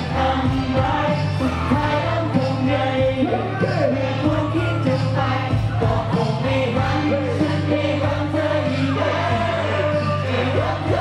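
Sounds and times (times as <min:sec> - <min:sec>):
amplified backing music: 0:00.0 - 0:11.0
man singing into microphone: 0:00.0 - 0:11.0.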